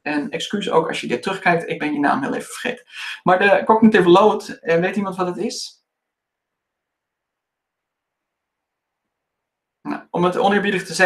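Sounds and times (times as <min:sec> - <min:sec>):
man speaking: 0:00.0 - 0:05.7, 0:09.9 - 0:11.0.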